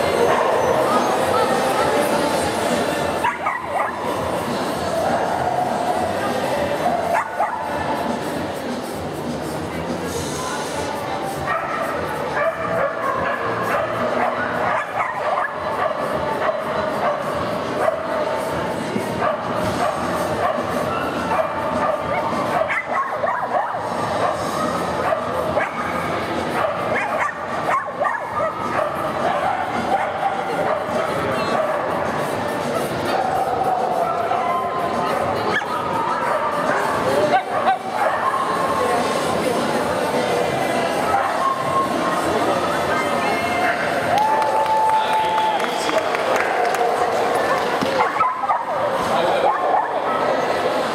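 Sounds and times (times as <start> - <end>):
background music: 0.0 - 50.9
dog barking: 3.2 - 4.0, 7.1 - 7.7, 11.5 - 18.1, 19.2 - 25.9, 26.5 - 32.0, 47.5 - 50.4.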